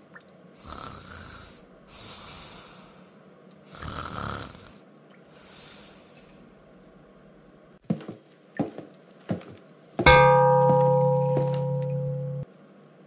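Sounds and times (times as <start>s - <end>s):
person snoring: 0.6s - 3.1s, 3.7s - 4.8s
soft breath: 1.4s - 3.9s, 5.2s - 6.5s.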